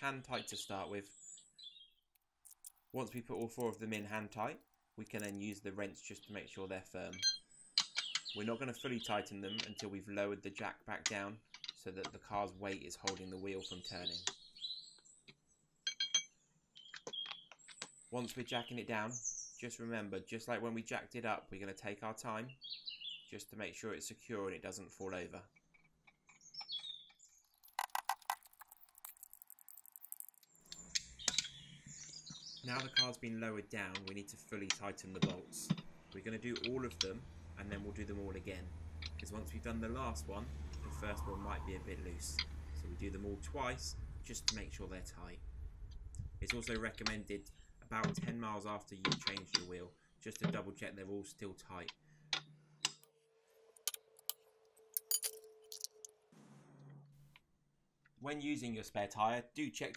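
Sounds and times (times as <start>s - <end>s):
bird chirping: 0.0s - 9.9s, 13.0s - 19.6s, 22.5s - 23.4s, 25.6s - 33.5s, 35.1s - 47.9s
faint bird chirps: 40.8s - 44.0s.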